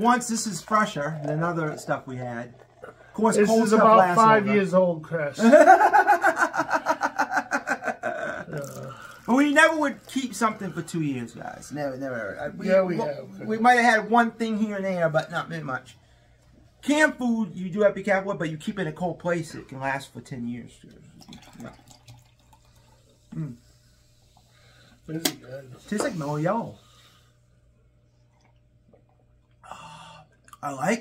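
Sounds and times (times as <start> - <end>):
sipping soda from cup: 0.6 - 3.2, 8.5 - 10.7, 20.9 - 24.6
men laughing: 5.4 - 9.0.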